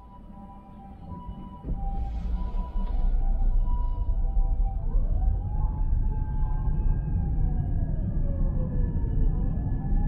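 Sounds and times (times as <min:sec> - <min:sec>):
emergency vehicle siren wailing: 0:00.0 - 0:10.0.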